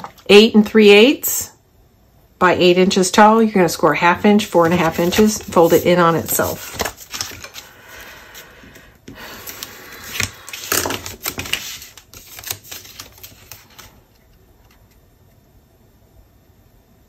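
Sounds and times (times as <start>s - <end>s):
paper rustling: 4.2s - 14.1s
stylus scraping cardstock: 4.4s - 7.6s
paper clicks: 4.6s - 7.7s, 9.4s - 14.0s.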